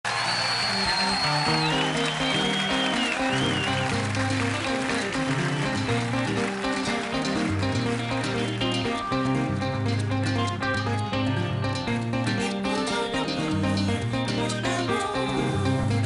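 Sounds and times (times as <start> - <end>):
live afro-pop band playing: 0.8 - 15.4.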